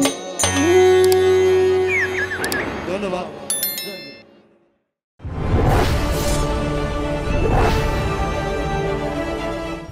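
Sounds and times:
theme music: 5.2s - 9.9s.

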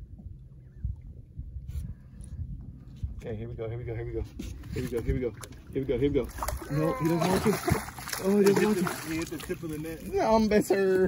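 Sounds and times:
wind rumble: 0.0s - 8.2s
choppy water around boat: 0.0s - 11.0s.

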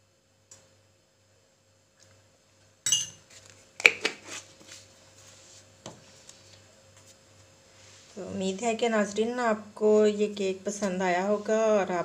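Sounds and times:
metal spoon clinking on dishes: 2.8s - 3.2s.

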